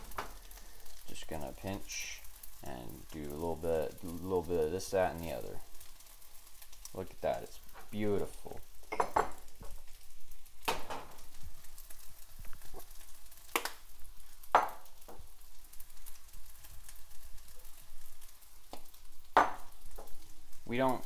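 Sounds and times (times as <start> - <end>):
rice sizzling in a frying pan: 0.0 - 21.0.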